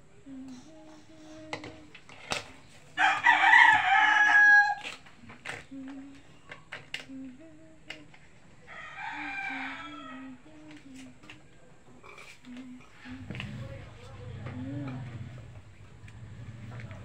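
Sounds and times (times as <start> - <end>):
rooster crowing: 3.0 - 5.0, 8.6 - 10.5.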